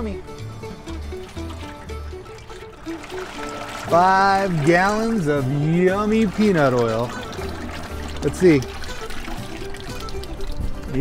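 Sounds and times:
light background music: 0.0 - 11.0
oil pouring into metal pot: 0.7 - 11.0.

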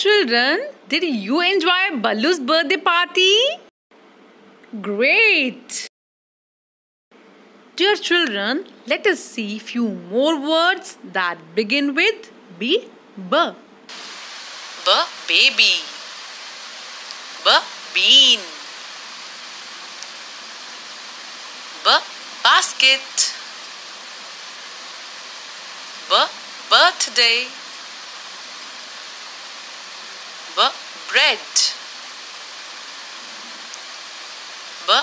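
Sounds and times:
woman speaking: 0.0 - 3.6, 4.7 - 5.9, 7.8 - 13.6, 14.8 - 16.0, 17.4 - 18.7, 21.8 - 23.4, 26.1 - 27.6, 30.5 - 31.8
background hiss: 13.9 - 35.0.

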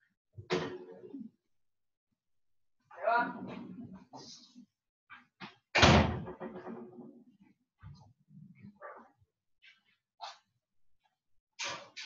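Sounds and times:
loud bang like door slamming: 5.7 - 6.6.

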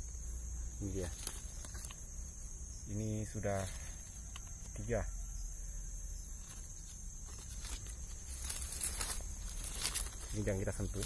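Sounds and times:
high insect drone: 0.0 - 11.0
dry leaves rustling and crackling: 0.8 - 2.0, 6.4 - 11.0.

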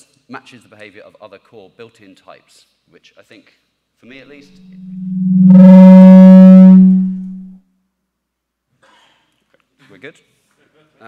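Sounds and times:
microphone feedback tone: 4.6 - 7.5.

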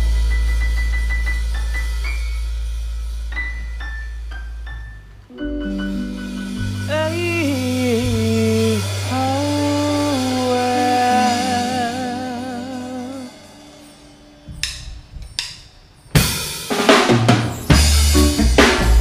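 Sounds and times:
sustained bass note: 0.0 - 15.4, 17.7 - 19.0
reggae band playing: 0.0 - 15.5, 16.1 - 19.0
drum kit hits and fill: 0.0 - 19.0
melody line with vibrato: 5.3 - 14.6.

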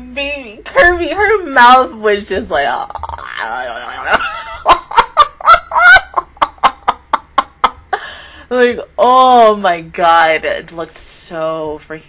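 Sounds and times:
woman laughing loudly: 3.8 - 8.2.

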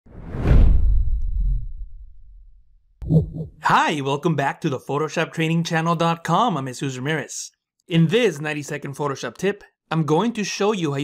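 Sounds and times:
whoosh with deep low rumble: 0.1 - 2.7.

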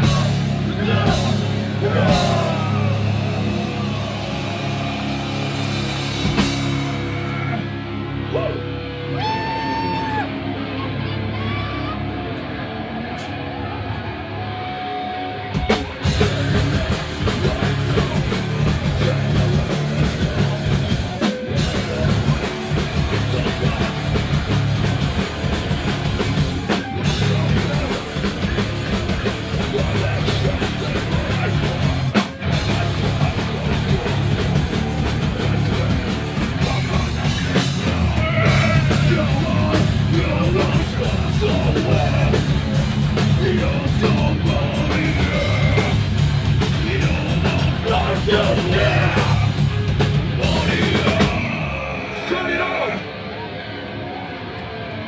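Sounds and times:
punk band playing live: 0.0 - 55.0.

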